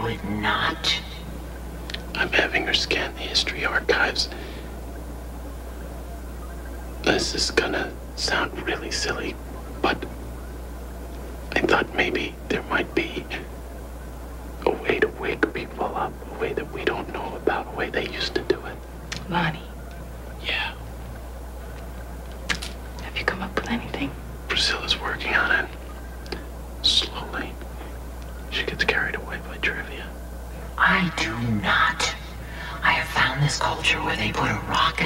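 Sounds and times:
man and woman whispering: 0.0 - 4.7, 7.0 - 10.2, 11.5 - 13.5, 14.6 - 19.7, 20.4 - 20.9, 23.0 - 35.0
steady low hum: 0.0 - 35.0.

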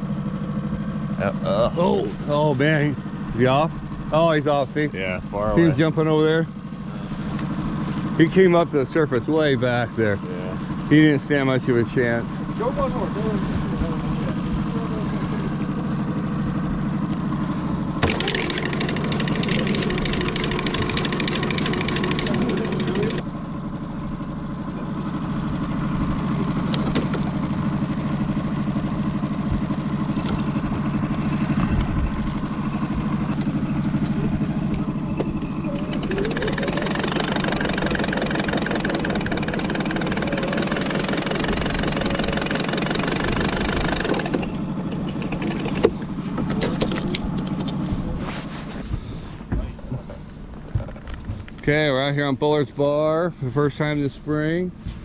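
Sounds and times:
outboard motor running: 0.0 - 55.0.

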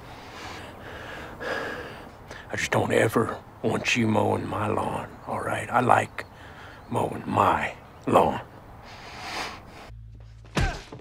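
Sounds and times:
man breathing: 0.0 - 2.5, 6.3 - 6.9, 8.8 - 10.0.

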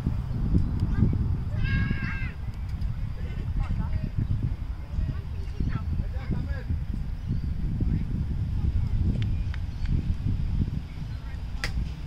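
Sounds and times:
wind rumbling on microphone: 0.0 - 12.0
drawn-out high call: 1.6 - 2.4.

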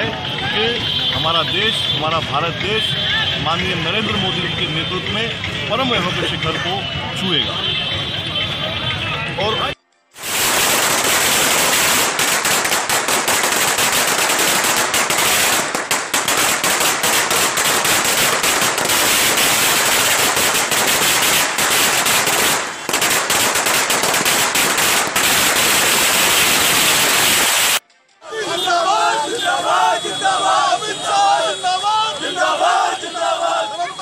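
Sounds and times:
firecrackers banging: 10.2 - 27.9.

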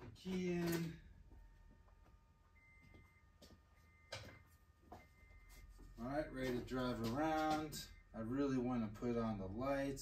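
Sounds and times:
car warning chime: 0.2 - 10.0.

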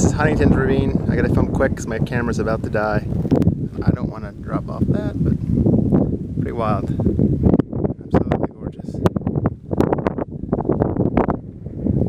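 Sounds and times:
gusty wind buffeting microphone: 0.0 - 12.0.

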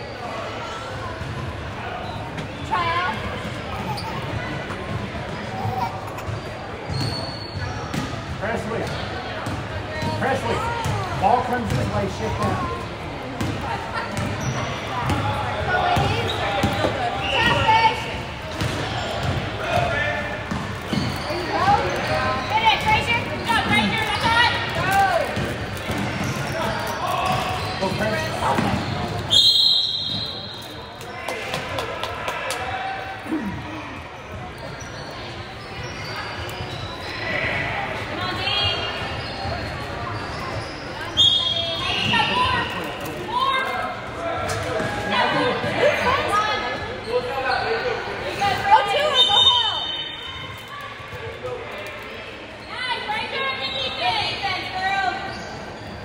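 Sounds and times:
sneakers squeaking: 0.0 - 31.8, 33.4 - 56.0
voices echoing in a hall: 0.0 - 56.0
basketball bouncing: 7.9 - 10.2, 10.8 - 11.9, 20.5 - 21.2
referee's whistle: 29.3 - 30.6, 40.6 - 42.6, 49.0 - 50.6.

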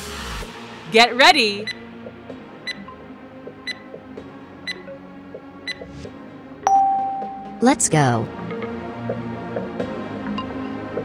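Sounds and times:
timer ticking: 3.6 - 3.8.

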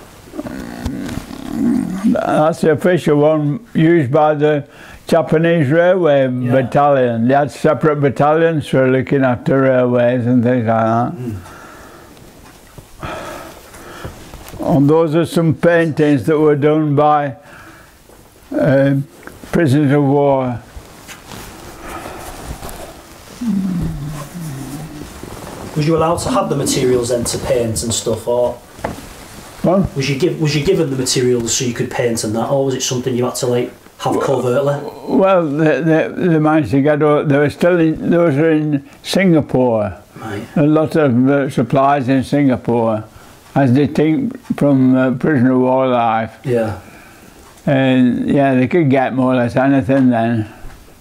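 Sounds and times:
man humming wordlessly: 23.3 - 25.1.

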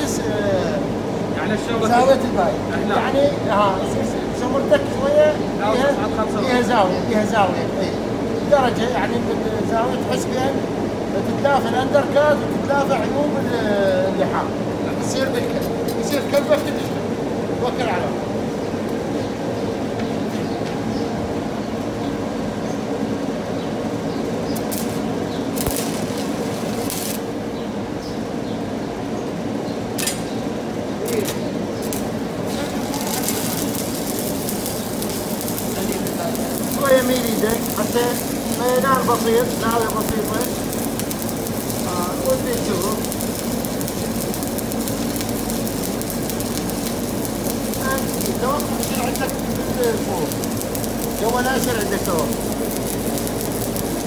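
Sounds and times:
workshop machinery humming: 16.9 - 54.0
welding arc crackling: 24.3 - 28.3, 29.9 - 54.0
hissing bursts: 24.5 - 27.5, 31.1 - 54.0.

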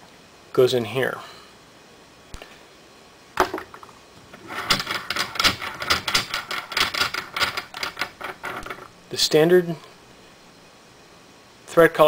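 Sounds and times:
metal threads rattling clicks: 4.4 - 8.9.

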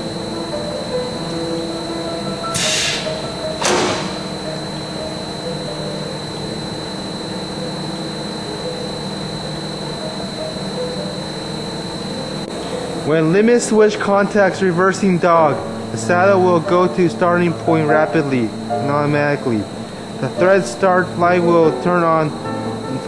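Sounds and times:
lathe humming and whining: 0.0 - 23.0
hiss bursts: 2.5 - 4.3.

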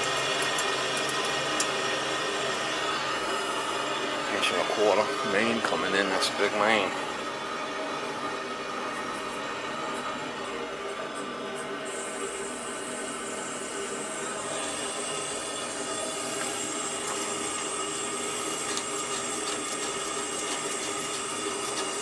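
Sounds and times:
water rushing through pipe: 14.4 - 22.0.

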